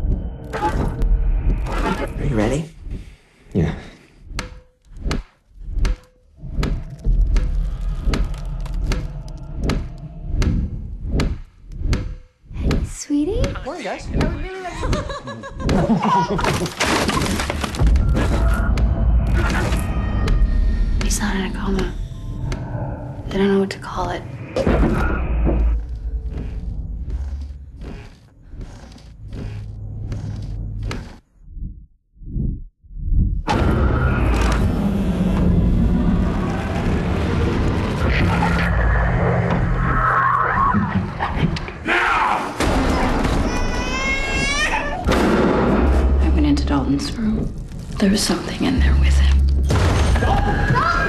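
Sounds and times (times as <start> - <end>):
deep low rumble: 6.3 - 11.8, 17.8 - 40.1, 45.5 - 50.6
low drone: 33.0 - 40.3.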